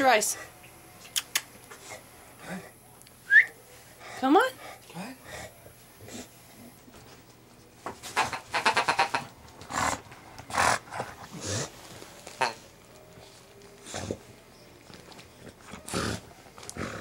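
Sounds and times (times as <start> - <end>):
dog grunting and snorting: 8.2 - 11.8, 15.8 - 17.0.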